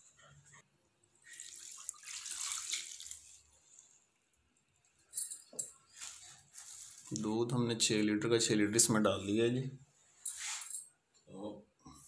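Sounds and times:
milk pouring into a pot: 0:01.0 - 0:04.9.

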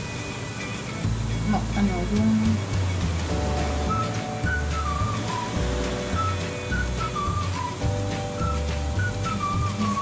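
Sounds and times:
whistle-like melody with bass line: 0:01.1 - 0:10.0.

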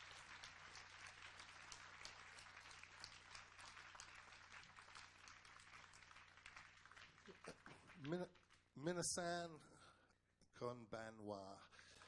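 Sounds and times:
faint audience clapping: 0:00.0 - 0:09.4.

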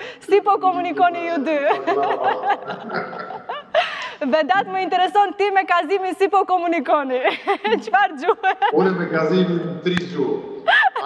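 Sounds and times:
people talking: 0:00.2 - 0:11.0.

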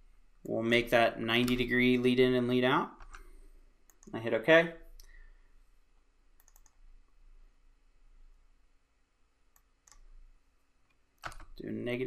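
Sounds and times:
computer mouse clicks: 0:03.9 - 0:04.2, 0:06.4 - 0:06.8, 0:09.5 - 0:10.1, 0:10.9 - 0:11.6.

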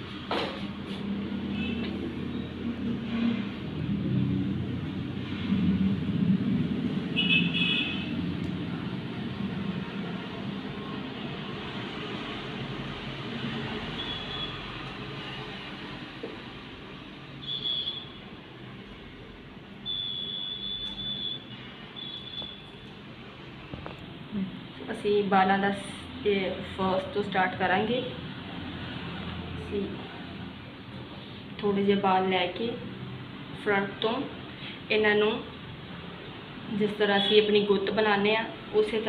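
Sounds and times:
road traffic rumble: 0:00.0 - 0:19.9, 0:20.8 - 0:39.0.

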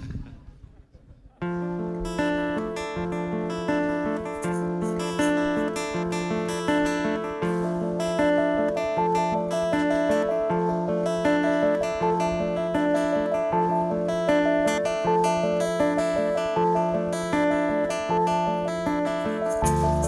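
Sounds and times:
strummed acoustic guitar: 0:01.4 - 0:20.0
live band instrumental: 0:19.3 - 0:20.0.

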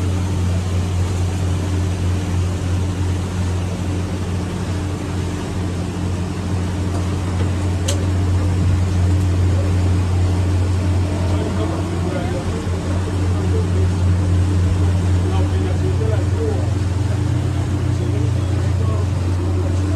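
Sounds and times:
boat engine humming: 0:00.0 - 0:19.9
water washing: 0:00.0 - 0:19.9
wind: 0:00.0 - 0:19.9.

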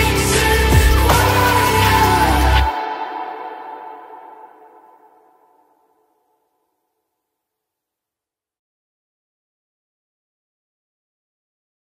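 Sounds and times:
electronic dance music: 0:00.0 - 0:04.4.

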